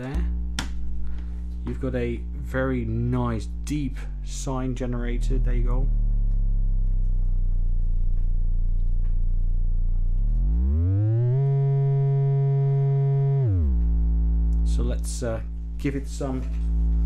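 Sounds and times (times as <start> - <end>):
deep sine tone gliding: 0.0 - 17.0.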